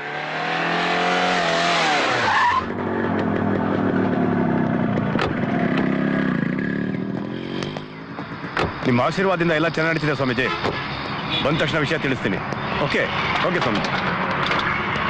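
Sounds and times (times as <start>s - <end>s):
tyres screeching: 1.3s - 2.8s
vehicle engines running: 2.4s - 15.0s.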